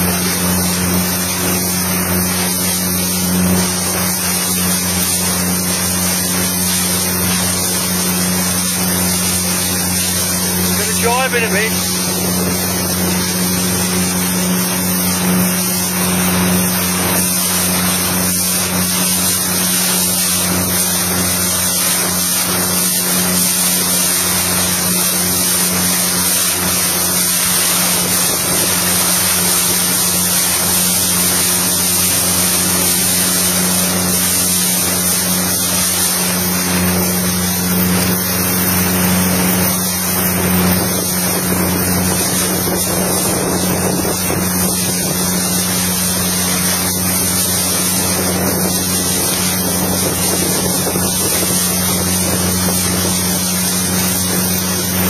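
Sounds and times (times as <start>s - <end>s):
motorboat engine running: 0.0s - 55.0s
water rushing: 0.0s - 55.0s
wind on microphone: 40.2s - 55.0s.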